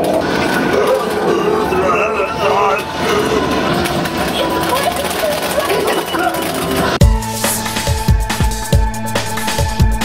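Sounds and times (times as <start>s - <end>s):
arcade machines noise: 0.0s - 8.0s
arcade game sound effects and music: 0.0s - 10.0s
voices: 0.5s - 7.0s.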